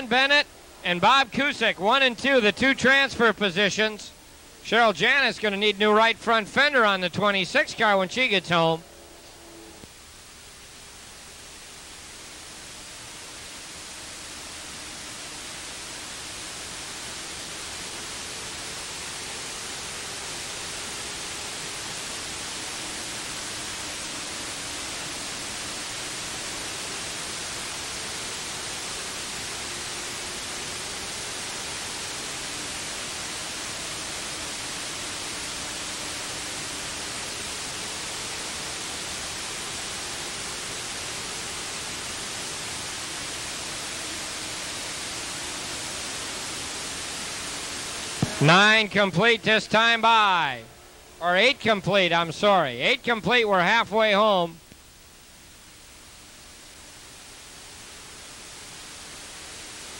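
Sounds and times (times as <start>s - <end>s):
steady hiss: 0.0s - 59.9s
distant race cars droning: 7.7s - 9.9s.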